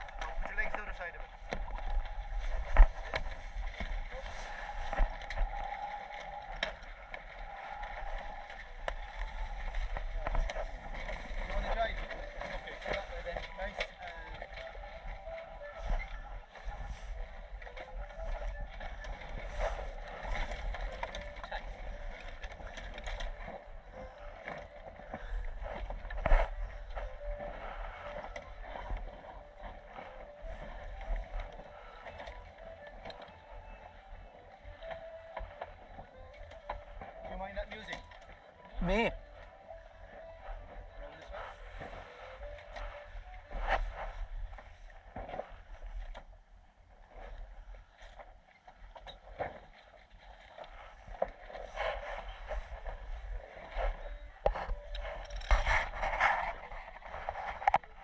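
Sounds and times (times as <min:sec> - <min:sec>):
wind on microphone: 0:00.0 - 0:37.3, 0:38.8 - 0:58.0
water washing along hull: 0:00.0 - 0:58.0.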